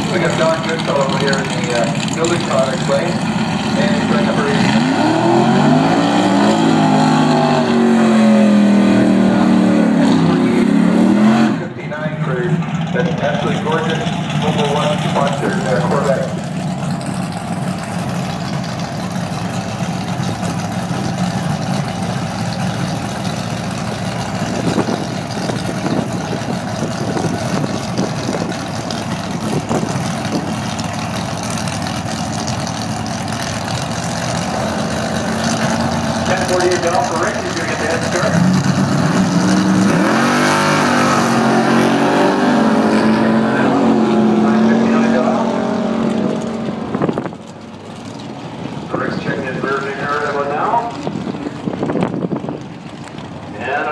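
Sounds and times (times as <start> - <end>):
car engine running steadily: 0.0 - 53.9
race car engines revving: 0.0 - 53.9.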